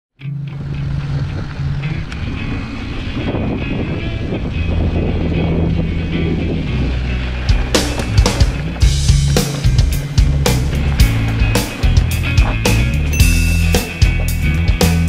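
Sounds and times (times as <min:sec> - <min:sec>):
held bass notes: 0:00.2 - 0:15.0
sharp hits: 0:13.2 - 0:14.0.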